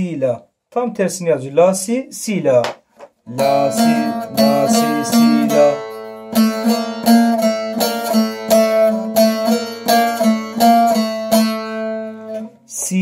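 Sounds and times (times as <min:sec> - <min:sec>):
open-string drone: 0:03.3 - 0:12.1
plucked long-necked lute notes: 0:03.3 - 0:12.6.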